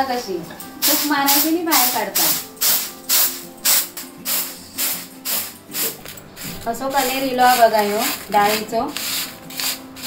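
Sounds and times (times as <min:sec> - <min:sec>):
grains rattling in winnowing basket: 0:00.8 - 0:06.0.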